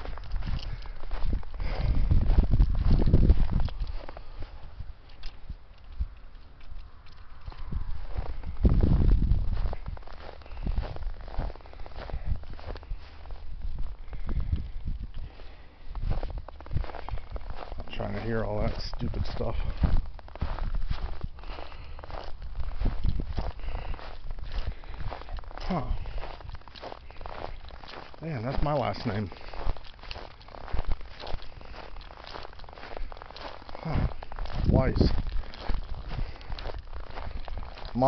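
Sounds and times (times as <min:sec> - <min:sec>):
footsteps crunching in snow: 0:00.0 - 0:38.0.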